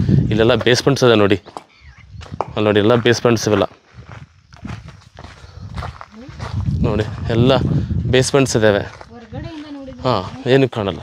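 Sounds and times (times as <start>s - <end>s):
footsteps on dirt and stone: 0.4s - 11.0s.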